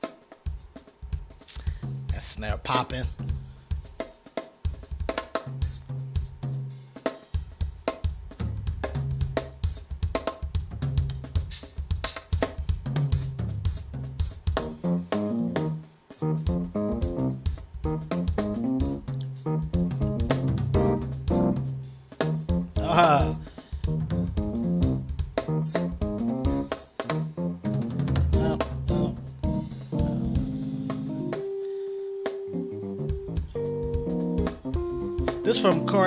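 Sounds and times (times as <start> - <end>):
drum kit playing: 0.0 - 36.0
keyboard bass notes: 14.5 - 31.6, 32.2 - 36.0
keyboard chords and melody: 14.6 - 36.0.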